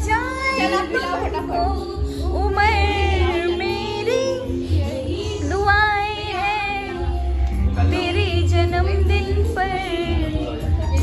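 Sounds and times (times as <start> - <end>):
woman singing with vibrato: 0.0 - 10.8
backing track with deep bass: 0.0 - 11.0.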